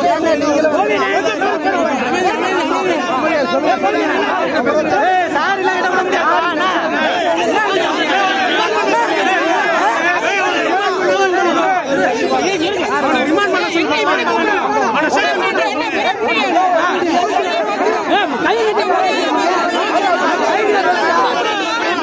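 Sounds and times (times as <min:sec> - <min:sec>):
men arguing and shouting: 0:00.0 - 0:22.0.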